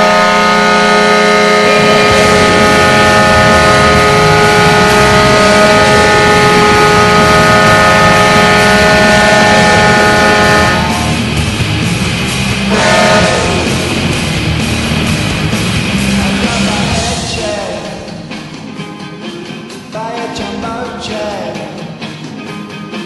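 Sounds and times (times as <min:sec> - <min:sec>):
goal horn blast: 0:00.0 - 0:11.4, 0:12.7 - 0:15.2.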